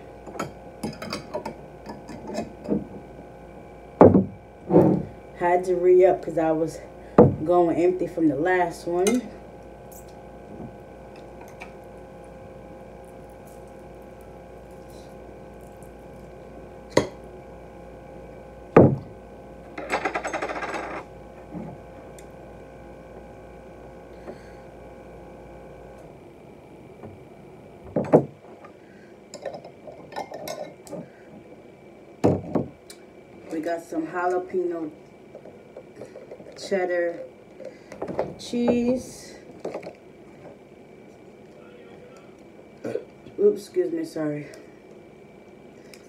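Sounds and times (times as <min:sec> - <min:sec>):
steady electrical hum: 0:00.0 - 0:46.0.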